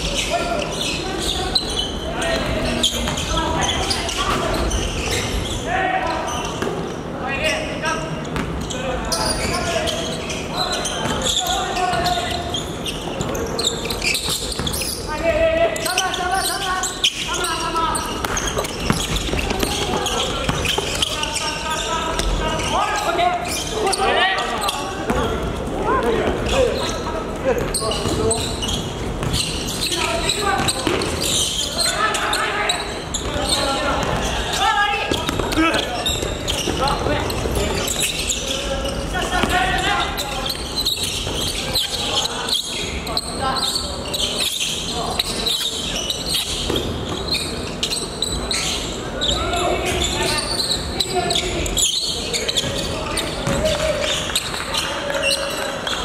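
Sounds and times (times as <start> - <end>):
players shouting in echoing gym: 0.0 - 56.0
basketballs bouncing on hardwood: 18.0 - 21.2, 27.6 - 31.4, 33.1 - 38.2, 39.3 - 39.9, 52.5 - 56.0.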